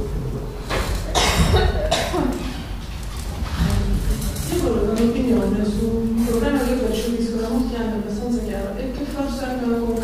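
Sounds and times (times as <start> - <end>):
person coughing: 1.1 - 2.6.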